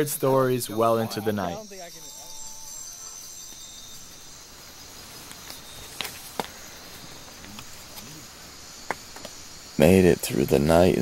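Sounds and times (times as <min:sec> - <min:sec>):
insect chorus drone: 0:00.0 - 0:11.0.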